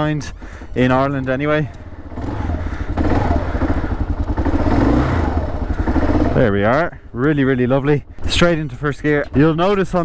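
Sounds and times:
motorcycle engine warming up: 0:00.2 - 0:10.0.

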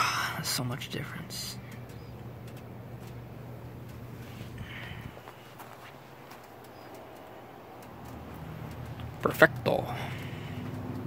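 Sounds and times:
steady low hum: 0:00.0 - 0:11.0
faint clicks: 0:01.6 - 0:03.2, 0:06.3 - 0:09.1.

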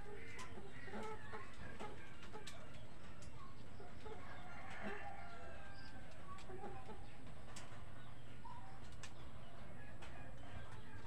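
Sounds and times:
rooster crowing: 0:04.2 - 0:05.9.

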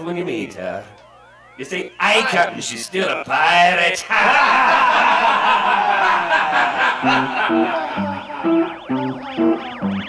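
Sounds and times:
siren-like synthesizer sweeps: 0:00.0 - 0:03.3, 0:06.3 - 0:10.0.

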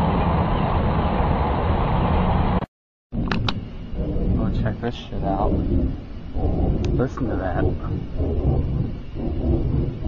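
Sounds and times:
loud low rumbling roar: 0:03.2 - 0:10.0.

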